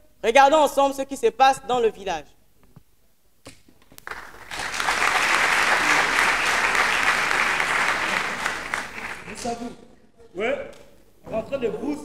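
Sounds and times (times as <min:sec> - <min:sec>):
audience applauding: 0:04.0 - 0:09.6.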